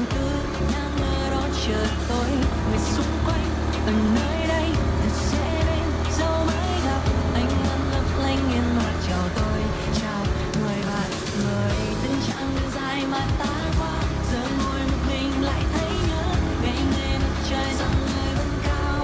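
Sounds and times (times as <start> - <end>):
background music: 0.0 - 19.0
motorcycle engine hum: 0.0 - 19.0.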